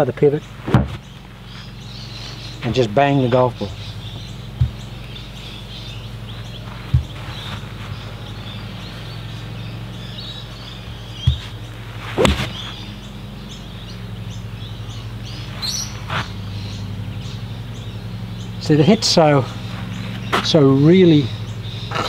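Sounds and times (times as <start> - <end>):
birds chirping: 0.0 - 22.0
golf iron striking ball: 10.7 - 13.0.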